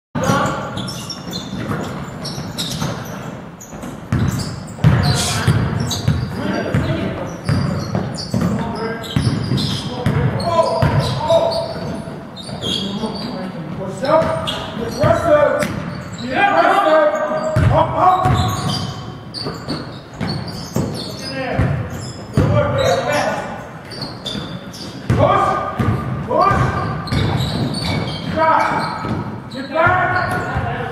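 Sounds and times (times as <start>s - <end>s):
basketball bouncing on wooden floor: 0.2s - 12.8s, 17.5s - 23.0s, 23.9s - 30.8s.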